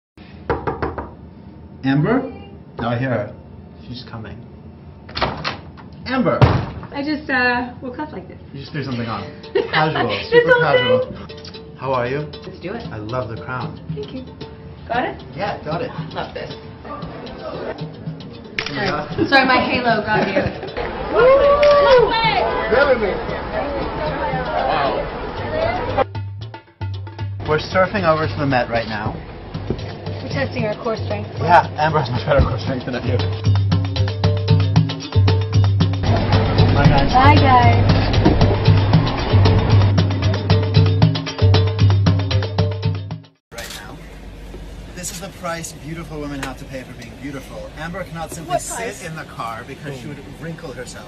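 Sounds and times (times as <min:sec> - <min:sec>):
knuckles knocking on door: 0:00.5 - 0:01.2
man speaking: 0:08.6 - 0:13.9, 0:31.4 - 0:33.3, 0:45.0 - 0:51.0
indistinct chatter of voices: 0:22.0 - 0:26.0.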